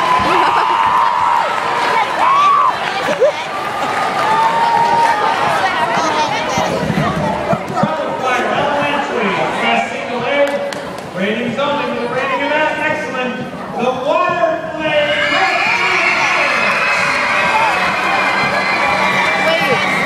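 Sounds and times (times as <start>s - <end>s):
crowd of overlapping voices: 0.0s - 20.0s.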